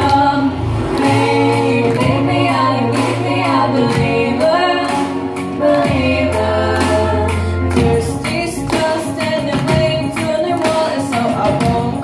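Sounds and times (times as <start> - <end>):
backing track: 0.0 - 12.0
girls singing in harmony: 0.0 - 12.0
steady bass line: 0.0 - 12.0.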